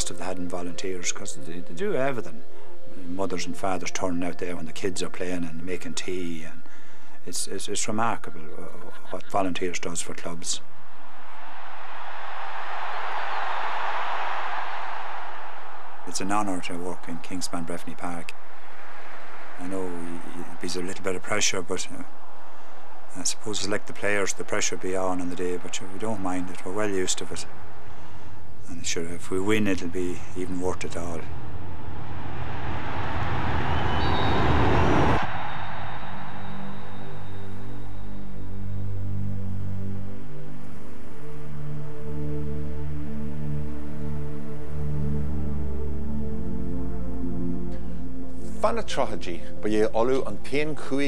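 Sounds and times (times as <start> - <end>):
crowd cheering and clapping: 10.9 - 17.4, 30.8 - 37.9.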